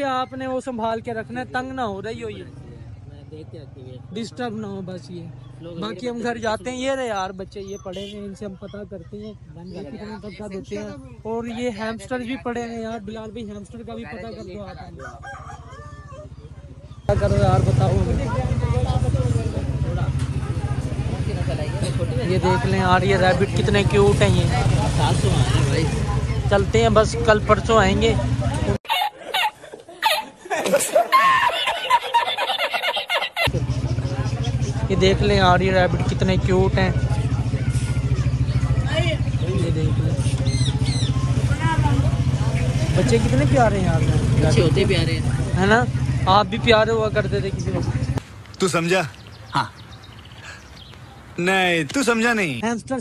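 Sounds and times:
motorcycle engine idling: 0.9s - 28.8s, 33.5s - 52.6s
rooster crowing: 14.9s - 16.5s.

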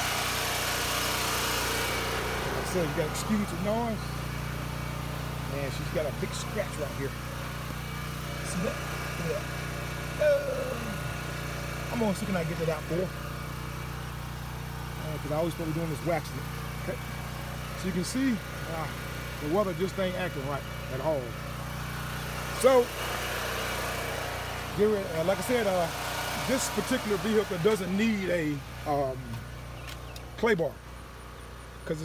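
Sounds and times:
generator engine idling: 0.0s - 32.0s.

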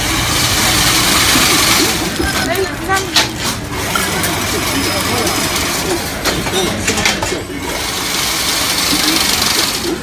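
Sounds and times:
weaving machine hissing: 0.0s - 10.0s.

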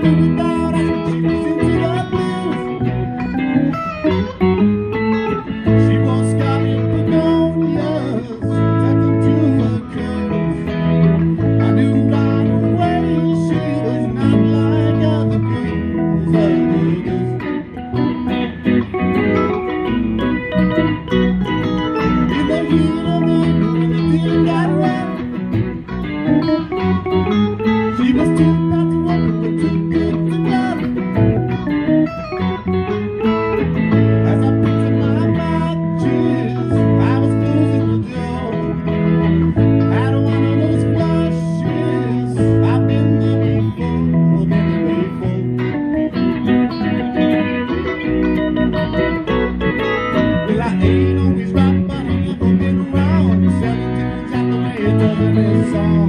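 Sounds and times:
live rock band playing: 0.0s - 56.0s.

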